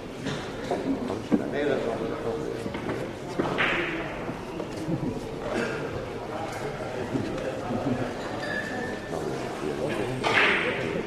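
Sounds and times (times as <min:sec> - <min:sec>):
low talk in a large room: 0:00.0 - 0:11.0.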